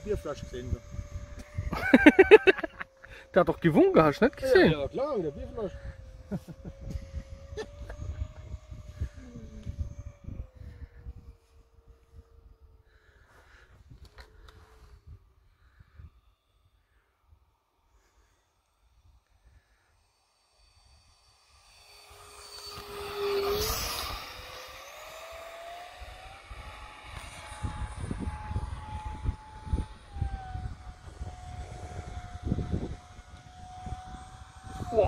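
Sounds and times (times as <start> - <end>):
wind rumble on microphone: 0.0 - 16.3, 22.8 - 35.0
electric ducted fan whine: 0.0 - 18.4, 19.0 - 35.0.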